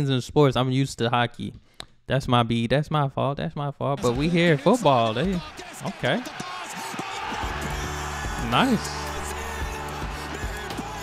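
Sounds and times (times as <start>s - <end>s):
crowd of fans singing: 6.4s - 11.0s
music with steady low bass: 7.5s - 11.0s.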